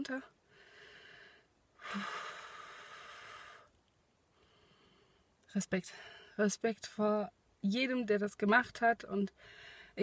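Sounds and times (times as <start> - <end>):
woman breathing heavily: 0.4 - 3.7, 4.3 - 6.4, 9.4 - 10.0.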